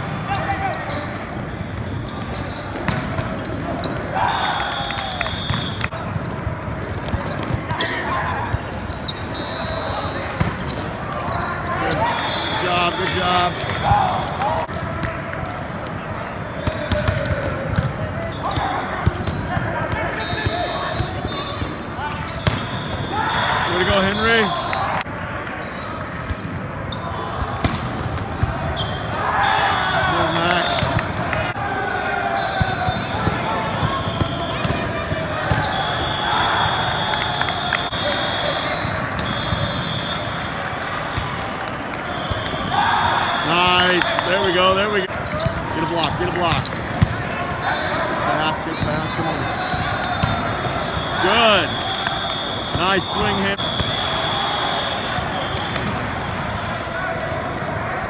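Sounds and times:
players shouting: 0.0s - 26.0s, 26.7s - 58.0s.

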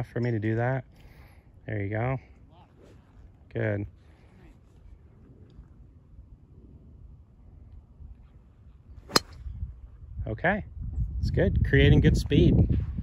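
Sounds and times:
golf driver striking ball: 9.1s - 9.4s.

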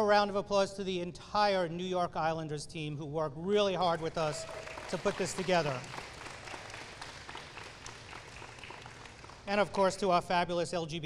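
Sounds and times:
audience applauding: 3.9s - 10.0s.

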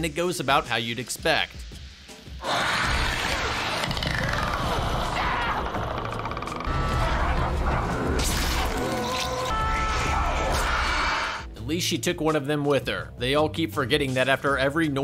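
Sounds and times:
dramatic film score: 1.4s - 13.0s.

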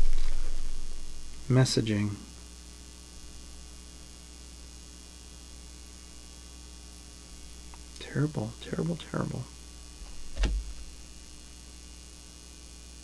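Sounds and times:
electrical mains hum: 0.0s - 13.0s.

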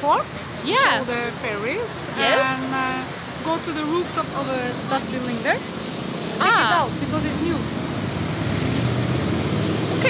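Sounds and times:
road noise: 0.0s - 10.0s.

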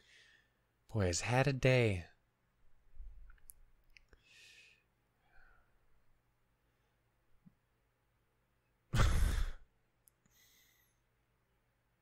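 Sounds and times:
man sighing: 8.9s - 9.7s.

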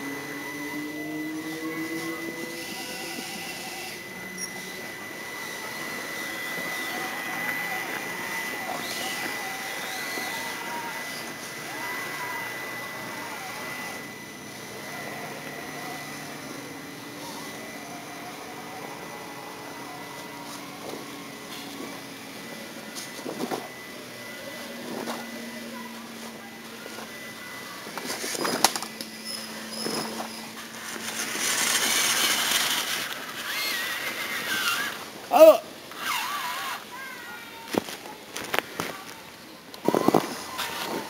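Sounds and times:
steady high tone: 0.0s - 37.6s
rc car motors whining: 0.0s - 41.0s.

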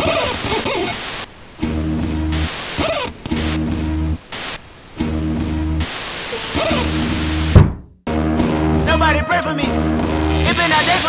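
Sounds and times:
television static hiss: 0.0s - 7.6s, 9.9s - 11.0s.

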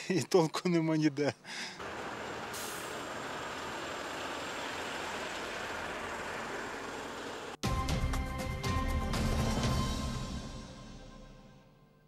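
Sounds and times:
vehicles driving over cobblestones: 1.8s - 7.6s.

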